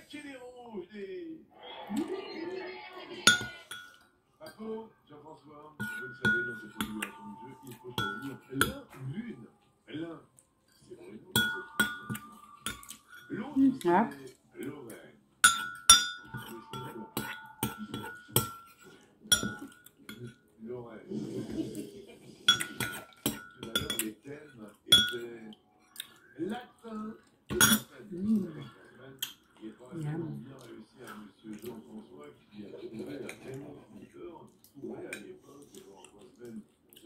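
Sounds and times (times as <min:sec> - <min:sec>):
metal spoon clinking on ceramic bowl: 0:03.3 - 0:04.6, 0:05.8 - 0:07.1, 0:08.0 - 0:08.8, 0:11.3 - 0:14.3, 0:15.4 - 0:20.4, 0:22.5 - 0:24.2, 0:24.9 - 0:25.4, 0:27.5 - 0:27.9.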